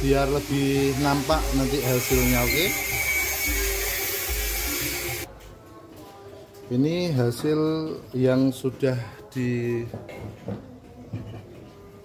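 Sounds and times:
high-pitched electric motor whine: 0.0 - 5.3.

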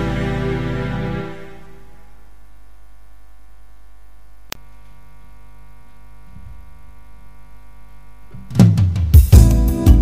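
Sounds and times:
faint hum of held tones: 0.0 - 8.6.

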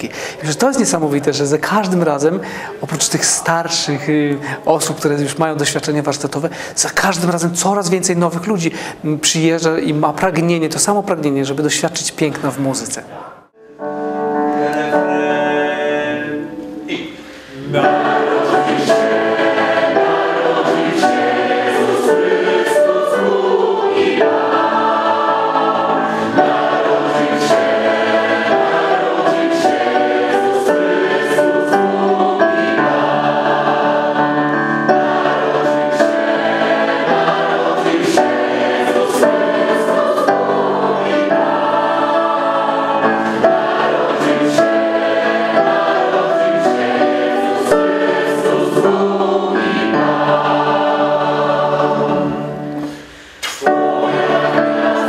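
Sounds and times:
mixed choir singing: 13.8 - 55.0.

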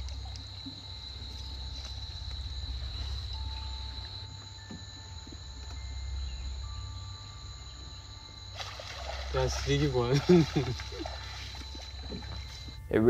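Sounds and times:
low steady rumble: 0.0 - 13.0
water splashing: 8.5 - 12.8.

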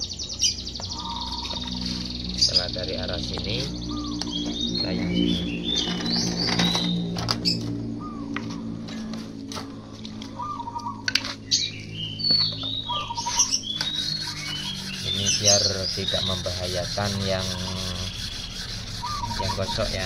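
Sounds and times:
small birds chirping: 0.0 - 9.0, 9.7 - 20.0
steady low hum: 0.0 - 20.0.

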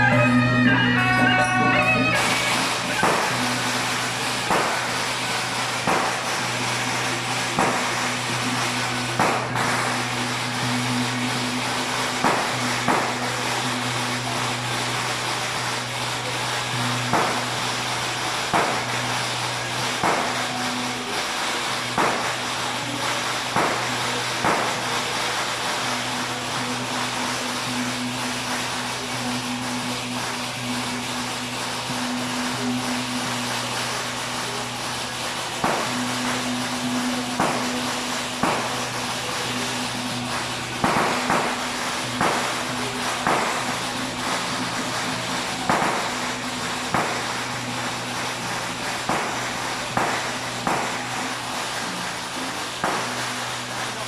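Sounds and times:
low drone: 0.0 - 54.0
sharp percussion strikes: 0.0 - 54.0.

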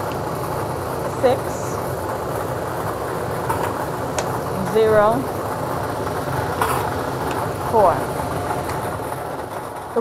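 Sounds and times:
ball-draw machine whirring: 0.0 - 10.0.

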